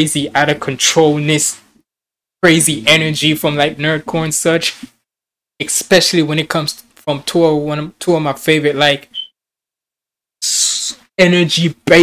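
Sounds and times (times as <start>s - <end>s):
man speaking: 0.0s - 1.8s, 2.4s - 4.9s, 5.6s - 9.3s, 10.4s - 12.0s.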